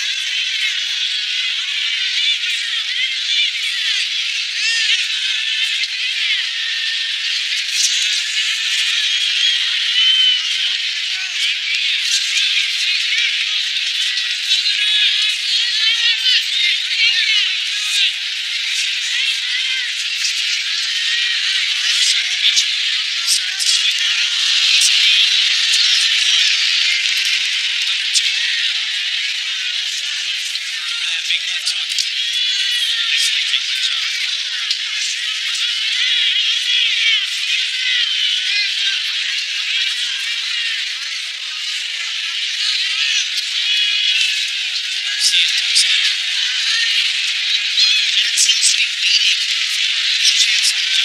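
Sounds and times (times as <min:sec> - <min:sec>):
arena crowd noise: 0:00.0 - 0:51.0.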